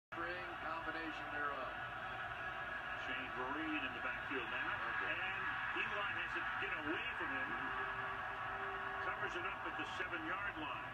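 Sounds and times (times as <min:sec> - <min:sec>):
stadium crowd noise: 0:00.1 - 0:10.9
commentator's voice: 0:03.0 - 0:07.8, 0:09.0 - 0:10.9.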